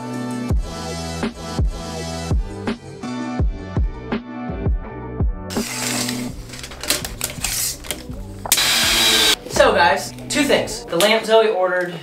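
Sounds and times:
background music with a beat: 0:00.0 - 0:11.3
cordless drill driving screws: 0:08.5 - 0:09.4
person speaking: 0:09.0 - 0:12.0.

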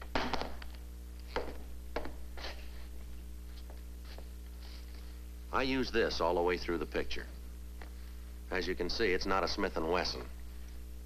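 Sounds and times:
film soundtrack hum and hiss: 0:00.0 - 0:11.0.

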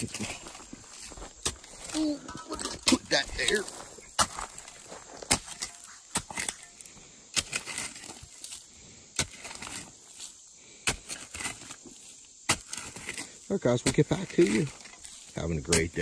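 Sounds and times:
digging tool chopping into dirt: 0:01.4 - 0:08.5, 0:09.2 - 0:09.9, 0:10.8 - 0:15.1, 0:15.7 - 0:16.0.

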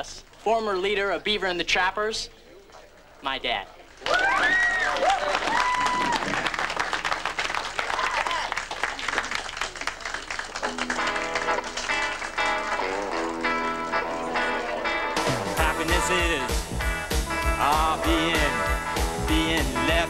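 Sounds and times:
audience applauding and cheering: 0:04.0 - 0:19.7
whistles and whoops: 0:04.1 - 0:06.4, 0:07.9 - 0:08.5
guitar playing sustained chords: 0:10.6 - 0:20.0.

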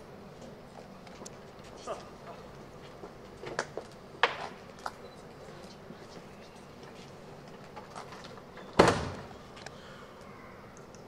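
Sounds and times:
faint steady background noise: 0:00.0 - 0:11.0.

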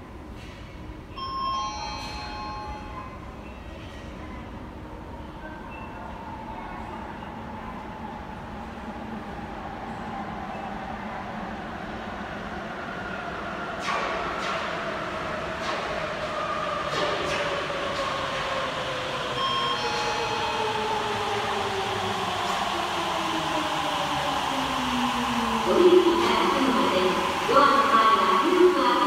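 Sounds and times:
train whine pulling into station: 0:00.0 - 0:29.0.

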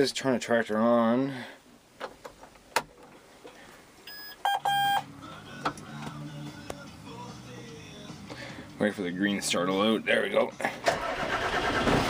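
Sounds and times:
warning buzzer beeps: 0:04.1 - 0:05.0.

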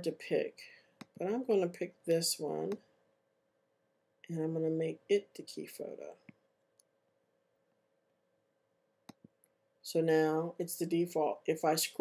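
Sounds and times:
faint steady hum: 0:00.0 - 0:12.0
computer mouse clicks: 0:09.0 - 0:09.5.

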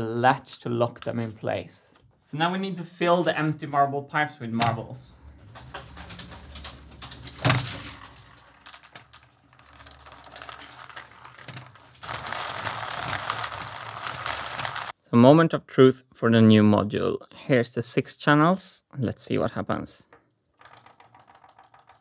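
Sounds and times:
steel marbles clattering in pipes: 0:05.2 - 0:15.0.

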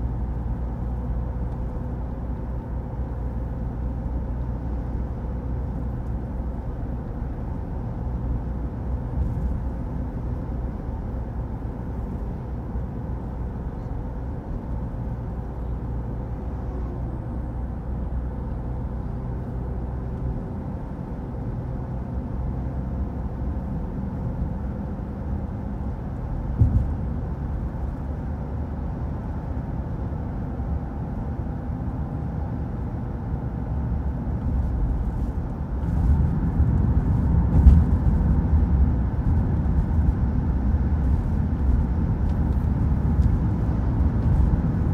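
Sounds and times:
tyre and engine rumble: 0:00.0 - 0:44.9
short thump: 0:26.5 - 0:27.1.

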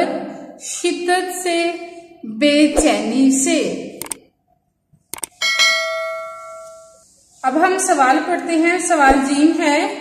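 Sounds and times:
mouse clicks: 0:04.0 - 0:04.2, 0:05.1 - 0:05.4
bell chime ringing: 0:05.4 - 0:07.0.

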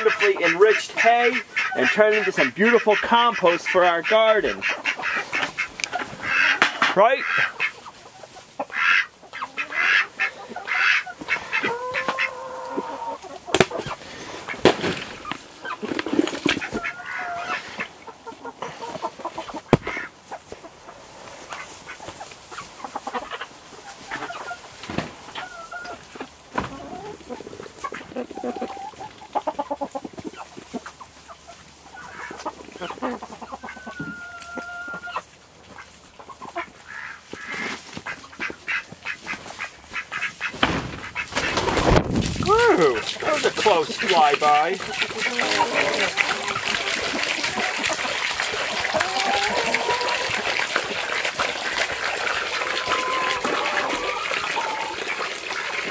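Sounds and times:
birds pecking and rustling in hay: 0:00.0 - 0:55.9
ducks quacking: 0:00.0 - 0:55.9
hens clucking and squawking: 0:00.0 - 0:55.9.

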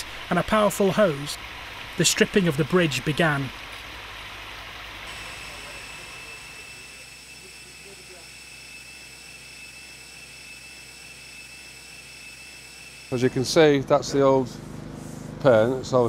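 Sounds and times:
grit blasting hose hiss: 0:05.0 - 0:09.5
thin high whine: 0:05.0 - 0:14.5.

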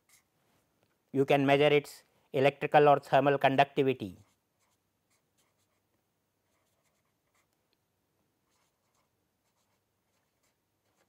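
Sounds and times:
marker scratching on paper: 0:00.0 - 0:00.3, 0:04.2 - 0:07.6, 0:08.4 - 0:11.0.

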